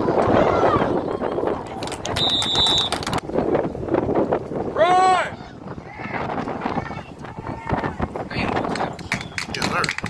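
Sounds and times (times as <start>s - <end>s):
spectators shouting: 0.0s - 1.8s, 4.8s - 8.2s
referee's whistle blown: 2.2s - 3.0s.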